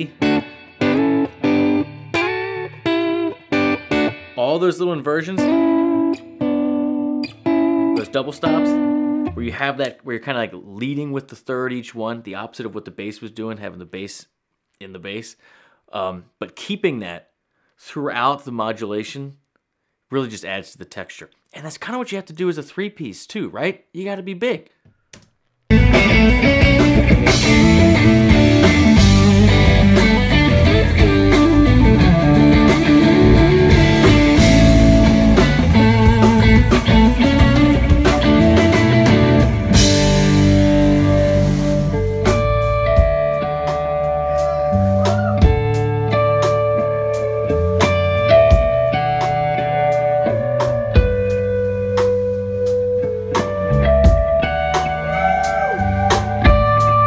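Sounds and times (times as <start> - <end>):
bass guitar: 0.0 - 4.4, 5.3 - 9.8, 25.7 - 57.0
guitar ringing harmonics: 0.0 - 4.4, 5.3 - 9.6, 25.7 - 57.0
overdriven electric guitar lead: 0.0 - 4.4, 5.4 - 9.4, 25.7 - 57.0
drums and cymbals: 25.7 - 43.3.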